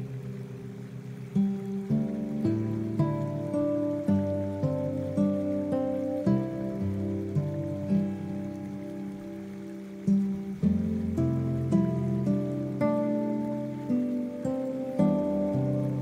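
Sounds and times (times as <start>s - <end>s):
acoustic guitar melody: 0.0s - 16.0s
faint rain hiss: 0.0s - 16.0s.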